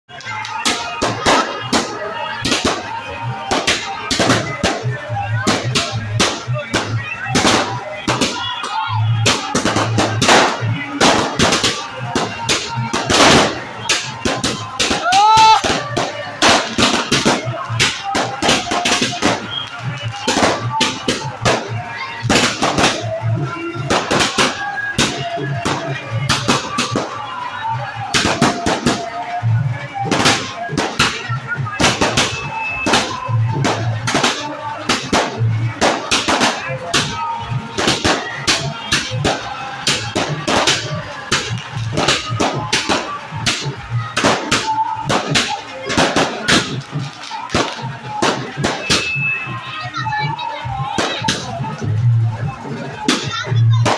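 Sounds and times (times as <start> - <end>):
firecrackers banging: 0.1 - 53.9
music: 0.1 - 53.9
voices: 0.1 - 53.9.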